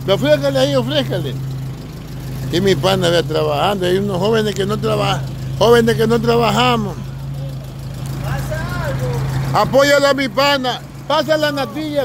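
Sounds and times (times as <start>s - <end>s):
car engines idling: 0.0s - 12.0s.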